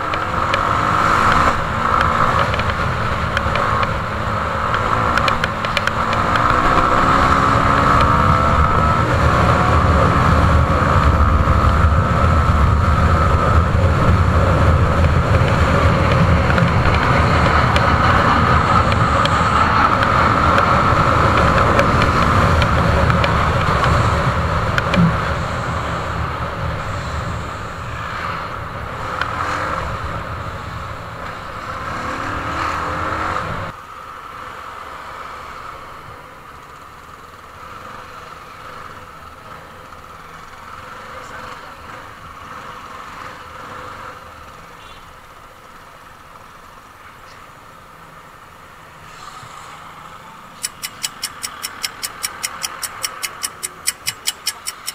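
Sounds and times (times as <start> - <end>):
motorcycle engine running: 0.0 - 26.7, 50.6 - 54.9
street sound: 0.0 - 54.9.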